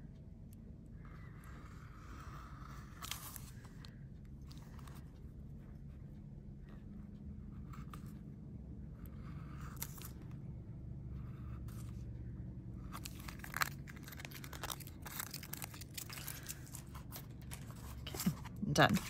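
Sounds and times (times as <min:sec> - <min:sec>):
low steady hum: 0:00.0 - 0:19.0
foil tape crinkling: 0:13.0 - 0:19.0.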